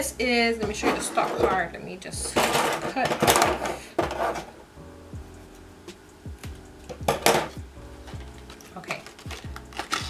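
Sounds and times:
background music with steady beat: 0.0 - 10.0
scissors cutting plastic packaging: 8.2 - 10.0.

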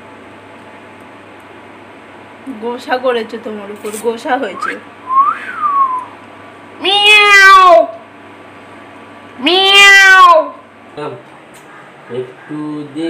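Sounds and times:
rising and falling whistle: 4.6 - 6.2
cat meowing: 6.8 - 8.0, 9.4 - 10.6.

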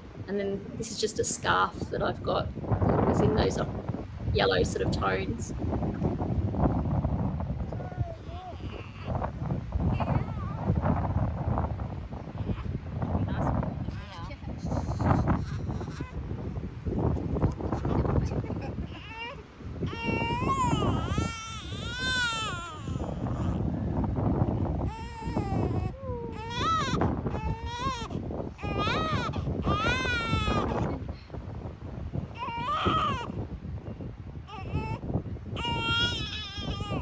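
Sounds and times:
newborn baby crying: 8.0 - 9.2, 9.9 - 10.7, 18.9 - 23.6, 24.9 - 30.8, 32.3 - 33.4, 34.5 - 35.0, 35.6 - 37.0.

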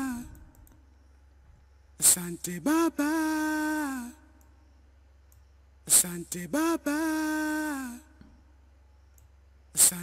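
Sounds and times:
low electrical hum: 0.0 - 10.0
computer mouse clicks: 0.3 - 0.8.

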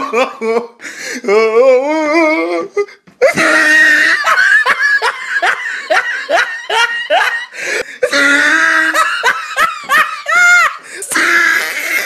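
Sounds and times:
person laughing hard: 0.0 - 1.4, 2.1 - 12.0.

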